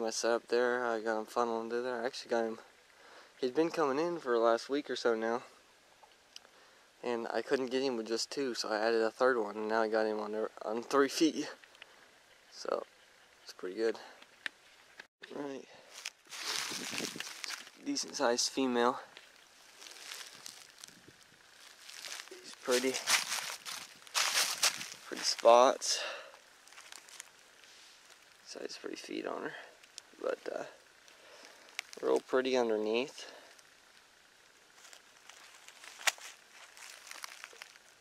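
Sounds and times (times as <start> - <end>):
dry leaves rustling and crackling: 15.9 - 28.6, 29.6 - 38.0.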